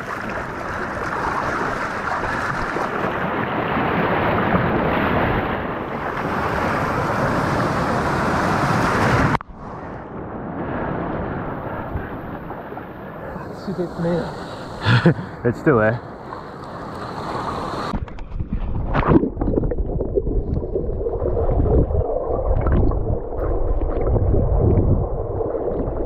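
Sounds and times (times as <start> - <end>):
rushing surf: 0.0 - 18.2
dull water sound: 0.0 - 26.0
wind on microphone: 2.1 - 13.9, 17.2 - 26.0.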